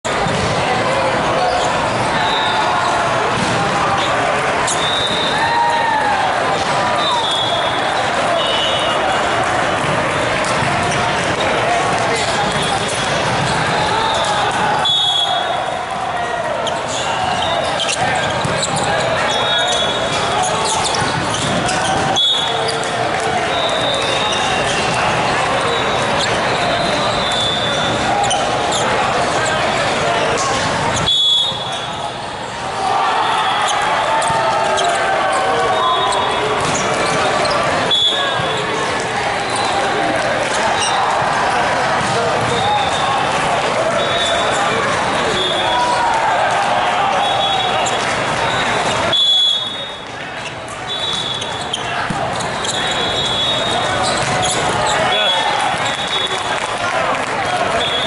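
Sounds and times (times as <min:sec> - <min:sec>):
court shoes squeaking: 0:00.0 - 0:58.0
many voices talking and calling: 0:00.0 - 0:58.0
volleyball hits: 0:00.1 - 0:02.6, 0:03.2 - 0:05.4, 0:06.3 - 0:32.0, 0:33.6 - 0:56.6.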